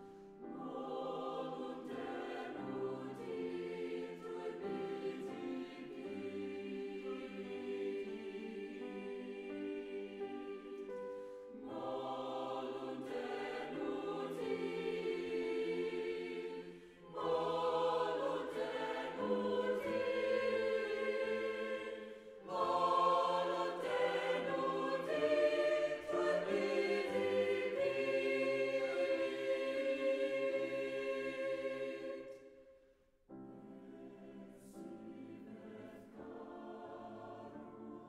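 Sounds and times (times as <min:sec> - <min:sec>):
choir singing sustained chords: 0:00.0 - 0:38.0.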